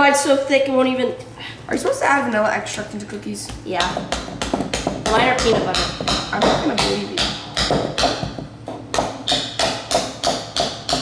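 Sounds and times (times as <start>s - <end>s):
utensils knocking ceramic bowl: 3.8s - 11.0s.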